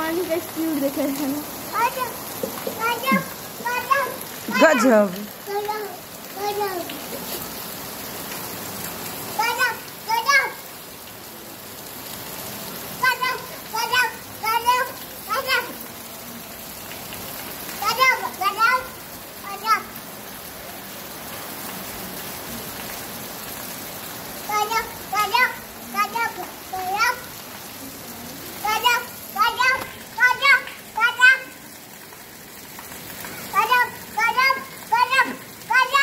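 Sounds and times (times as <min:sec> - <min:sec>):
heavy rain on concrete roofs: 0:00.0 - 0:36.0.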